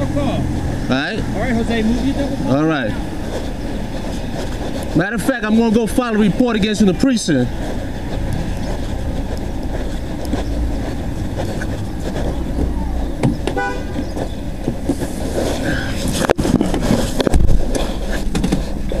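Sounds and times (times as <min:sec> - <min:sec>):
car road and engine noise: 0:00.0 - 0:19.0
car horn toot: 0:13.5 - 0:14.0.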